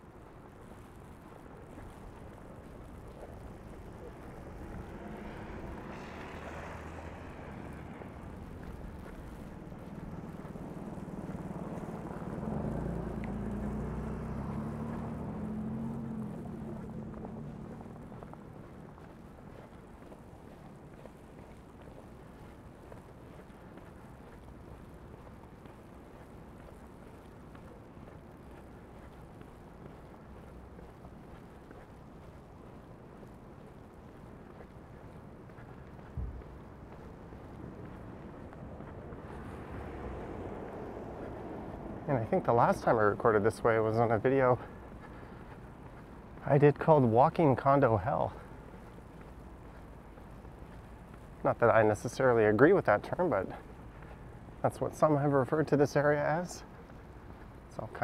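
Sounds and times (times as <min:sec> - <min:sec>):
low city background: 0:00.0 - 0:58.0
tyre noise of passing vehicle: 0:00.0 - 0:58.0
vehicle engine hum passing: 0:00.0 - 0:58.0.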